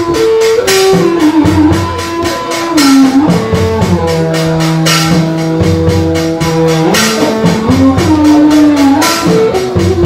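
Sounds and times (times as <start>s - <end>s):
cymbal crash: 0.0s - 10.0s
drum and percussion beat: 0.0s - 10.0s
sliding held melody: 0.0s - 10.0s.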